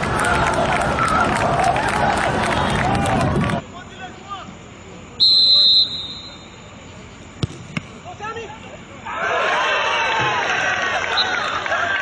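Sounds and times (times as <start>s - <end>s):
referee's whistle blast: 5.2s - 6.6s.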